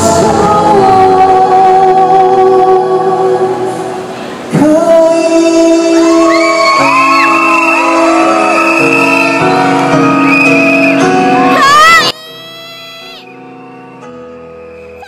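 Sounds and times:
musical accompaniment: 0.0 - 15.0
man singing into microphone: 4.5 - 8.0.

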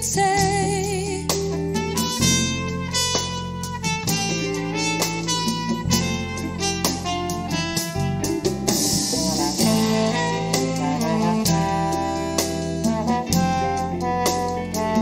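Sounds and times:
big band playing jazz: 0.0 - 15.0
saxophone section: 1.8 - 15.0
drum strokes: 2.0 - 15.0.

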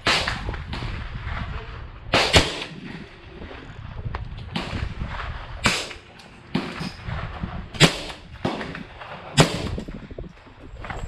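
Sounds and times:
rifle gunshots: 0.0 - 3.2, 4.5 - 9.9.

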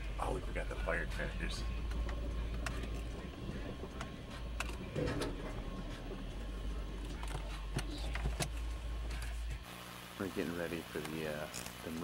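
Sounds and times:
car cabin rumble: 0.0 - 9.6.

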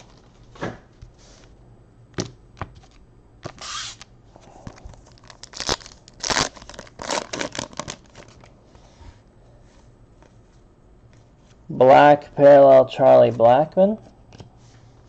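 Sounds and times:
wrapper tearing and crinkling: 4.9 - 8.5.

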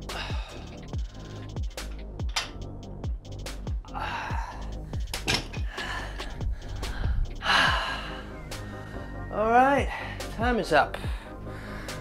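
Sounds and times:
man gasping breaths: 0.0 - 1.6, 3.9 - 9.2, 11.0 - 12.0
electronic music with kick drum: 0.0 - 11.4.

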